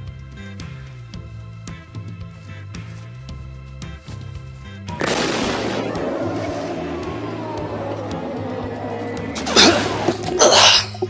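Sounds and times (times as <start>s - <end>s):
loud crashing impacts: 5.0s - 10.4s
faint downward sliding tone: 5.8s - 10.4s.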